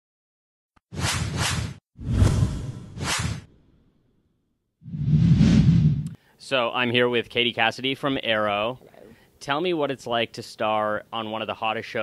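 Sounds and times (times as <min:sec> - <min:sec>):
whooshes: 0:00.9 - 0:03.5, 0:04.9 - 0:06.2.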